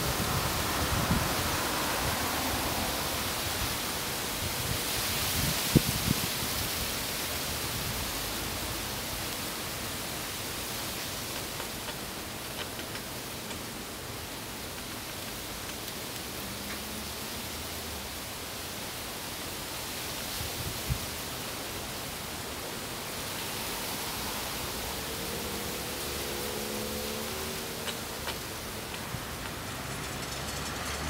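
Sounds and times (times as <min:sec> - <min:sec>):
outdoor background hiss: 0:00.0 - 0:31.0.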